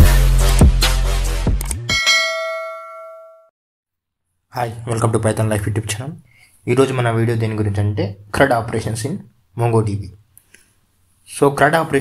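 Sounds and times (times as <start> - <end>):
bell-like metallic ding: 1.8 - 3.5.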